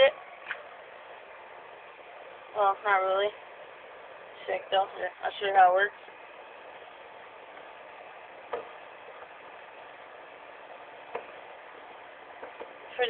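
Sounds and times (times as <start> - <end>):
steady hiss: 0.0 - 13.0.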